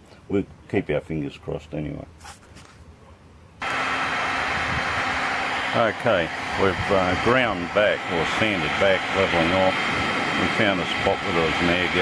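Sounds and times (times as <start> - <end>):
heat gun blowing: 3.6 - 12.0.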